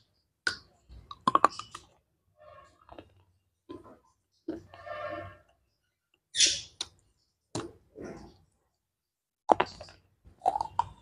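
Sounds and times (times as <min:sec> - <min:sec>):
chewing crunches: 0:09.5 - 0:11.0
crunchy wafer bite: 0:09.5 - 0:11.0.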